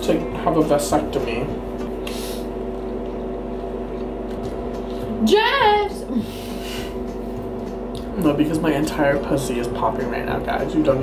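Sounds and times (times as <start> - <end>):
steady motor hum: 0.0 - 11.0.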